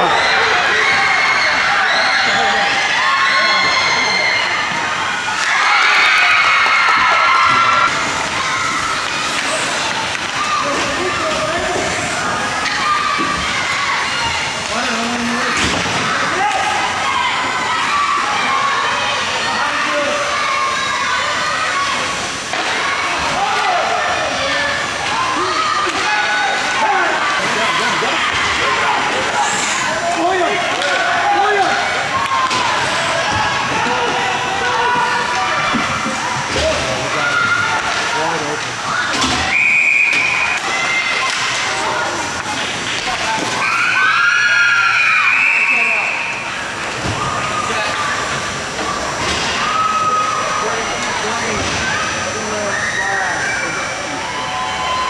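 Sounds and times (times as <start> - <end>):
crowd shouting and cheering: 0.0 - 55.0
children's voices: 7.6 - 39.4.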